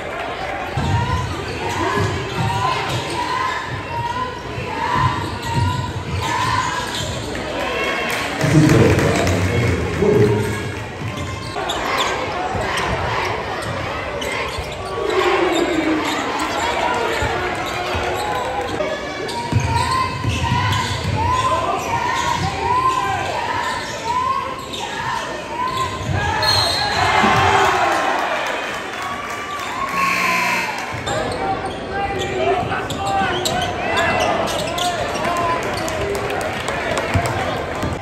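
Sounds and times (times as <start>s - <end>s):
crowd voices: 0.0s - 38.0s.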